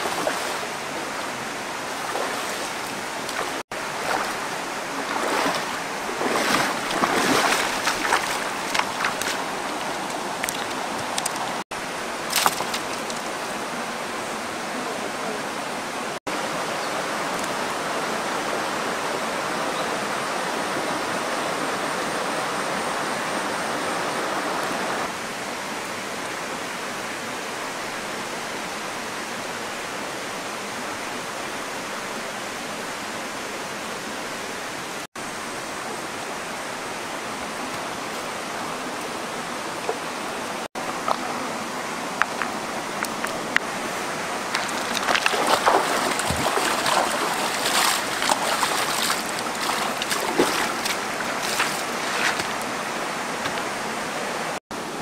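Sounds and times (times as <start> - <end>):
stream rushing over stones: 0.0 - 55.0.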